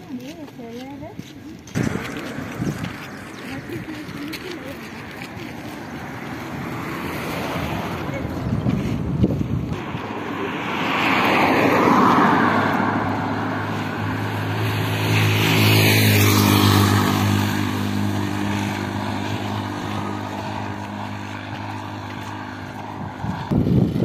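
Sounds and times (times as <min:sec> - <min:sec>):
vehicles passing on road: 0:00.0 - 0:24.0.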